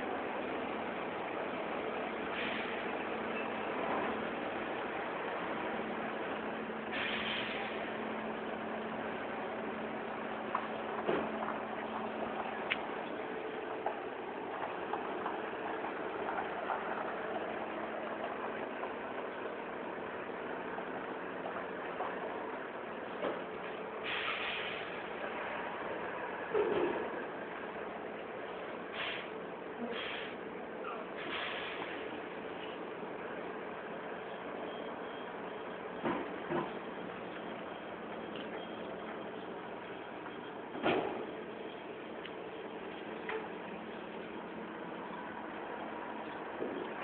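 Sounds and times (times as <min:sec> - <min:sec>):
engine idling: 0:00.0 - 0:47.0
truck running: 0:00.0 - 0:47.0.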